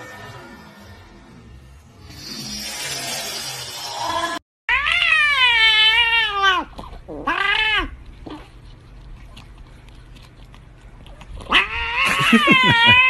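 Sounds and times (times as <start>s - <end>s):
cat yowls: 11.5s - 13.0s.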